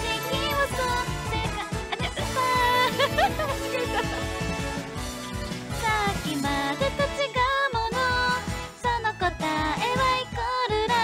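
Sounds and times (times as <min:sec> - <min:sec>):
woman singing pop song: 0:00.0 - 0:03.3, 0:05.8 - 0:11.0
karaoke backing track: 0:00.0 - 0:11.0.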